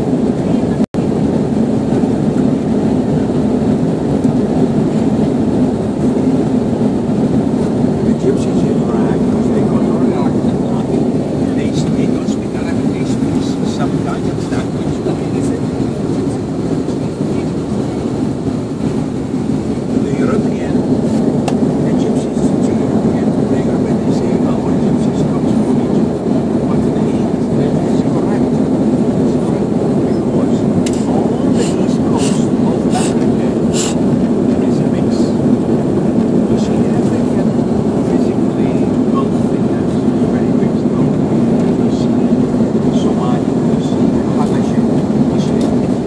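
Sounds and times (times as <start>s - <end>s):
jet engine and airflow rumble: 0.0s - 46.0s.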